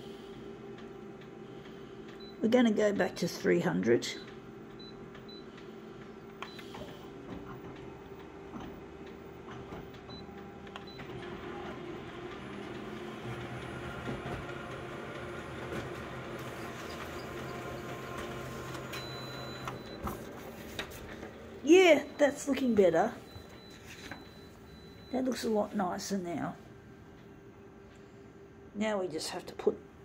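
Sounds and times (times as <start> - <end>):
photocopier humming: 0.0 - 28.0.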